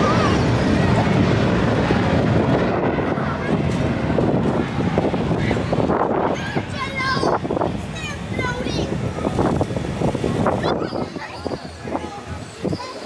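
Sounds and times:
faint voices: 0.0s - 13.0s
wind buffeting microphone: 0.0s - 13.0s.

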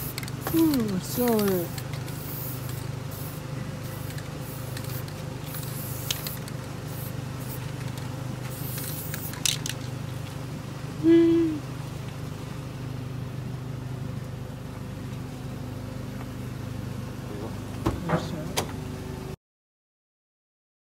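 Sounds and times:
spray paint can hissing: 0.0s - 10.0s
steady low hum: 0.0s - 19.4s.

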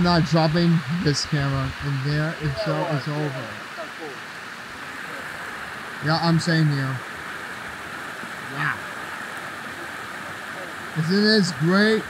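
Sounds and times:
creek water rushing over rocks: 0.0s - 12.0s.

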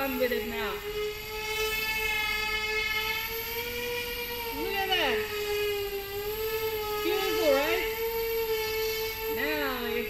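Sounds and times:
propellers whining: 0.0s - 10.0s.

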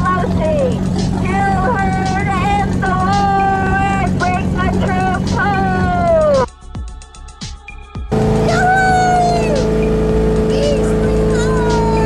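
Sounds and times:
boat motor drone: 0.0s - 6.5s, 8.1s - 12.0s.

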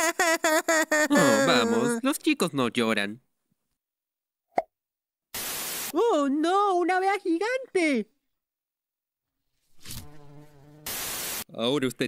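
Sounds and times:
tv static hiss: 5.4s - 6.0s, 10.9s - 11.4s
cartoon bee buzzing: 9.8s - 11.4s.

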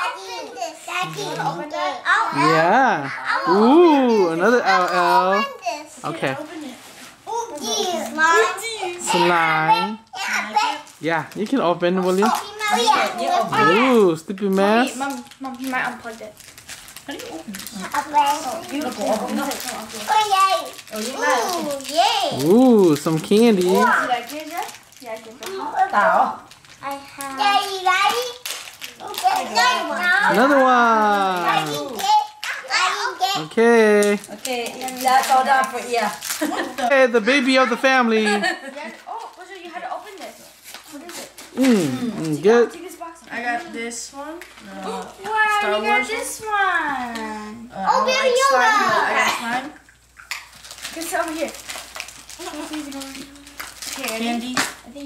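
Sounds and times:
plastic candy wrappers crinkling: 0.9s - 2.6s, 10.2s - 42.9s, 50.0s - 55.0s
person speaking: 41.6s - 42.7s.

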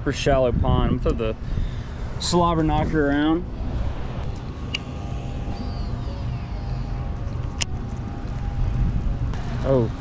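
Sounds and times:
wind buffeting microphone: 0.3s - 9.5s
fishing reel spool whine: 4.2s - 10.0s.

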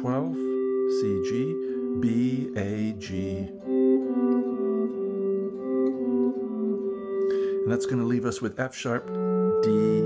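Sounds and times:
electric guitar playing: 0.0s - 10.0s.

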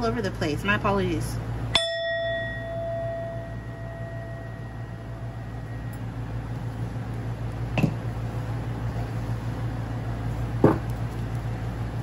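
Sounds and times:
singing bowl ringing: 1.7s - 6.3s.

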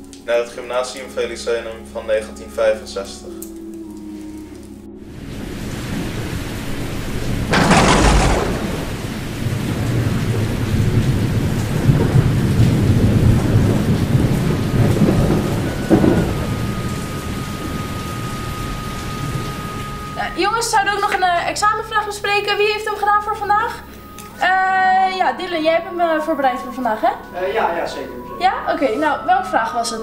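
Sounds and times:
heavy rain: 5.0s - 21.5s
thunderclap: 7.3s - 17.9s.

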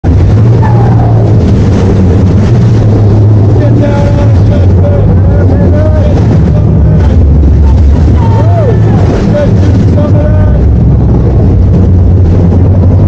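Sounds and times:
boat engines droning: 0.0s - 13.0s
water churning: 0.0s - 13.0s.

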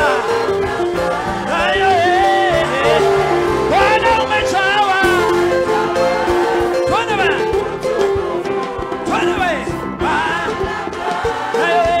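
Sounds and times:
band accompaniment: 0.0s - 12.0s
gospel choir singing: 0.0s - 12.0s.

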